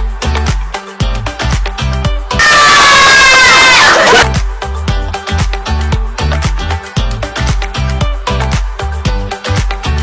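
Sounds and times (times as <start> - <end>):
children shouting and cheering: 2.4 - 4.2.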